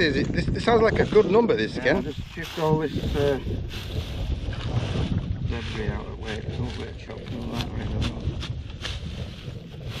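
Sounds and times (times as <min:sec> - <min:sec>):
wind buffeting microphone: 0:00.0 - 0:10.0
straw stubble crunching underfoot: 0:00.8 - 0:10.0.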